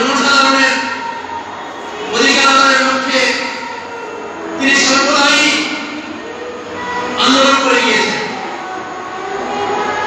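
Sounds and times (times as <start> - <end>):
man speaking into a microphone: 0.0 - 1.0, 2.1 - 3.6, 4.6 - 5.9, 7.2 - 8.4
steady noise: 0.0 - 10.0.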